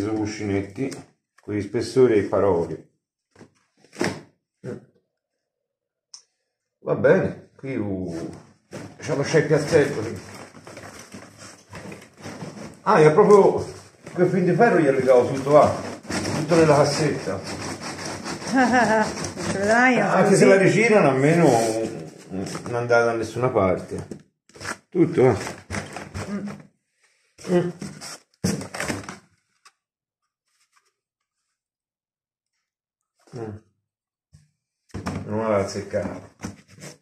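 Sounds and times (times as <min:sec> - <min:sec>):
packaging rustling: 0:08.7 - 0:17.0, 0:24.5 - 0:26.5.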